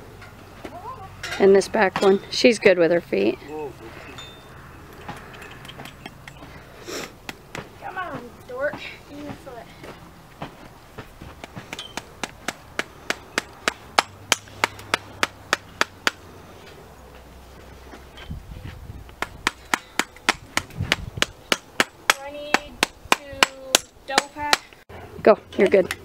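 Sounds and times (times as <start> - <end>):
hammering knocks: 10.4 - 16.2.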